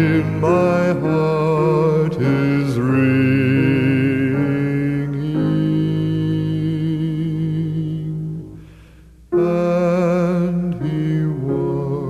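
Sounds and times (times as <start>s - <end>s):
slow hymn music with vibrato: 0.0s - 12.0s.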